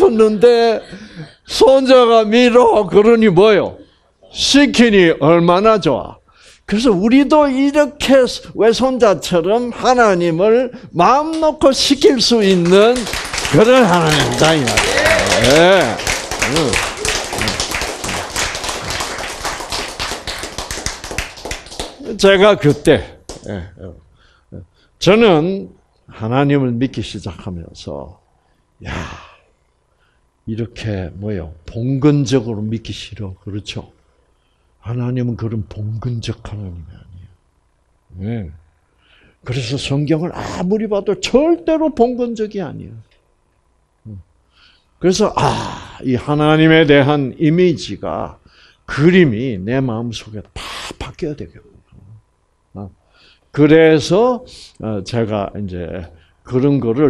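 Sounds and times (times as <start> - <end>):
hand clapping: 12.5 - 23.6.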